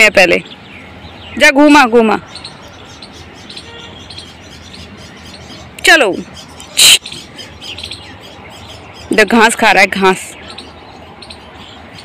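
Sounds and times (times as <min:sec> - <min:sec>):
birds chirping faintly: 0:00.0 - 0:12.0.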